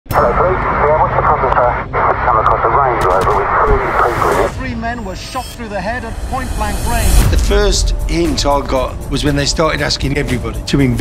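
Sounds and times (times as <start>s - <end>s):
man speaking over phone line: 0.1s - 7.2s
steady low hum: 0.1s - 7.3s.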